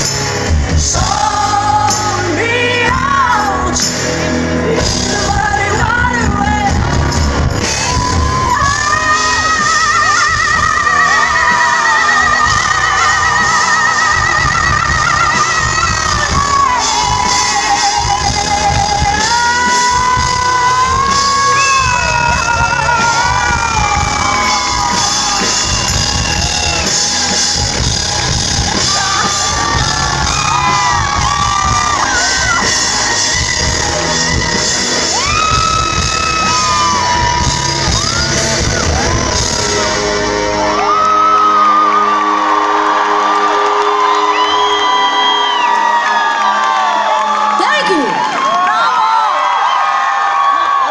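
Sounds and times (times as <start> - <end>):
live rock band playing: 0.0 - 48.2
crowd whooping and yelling: 0.0 - 50.9.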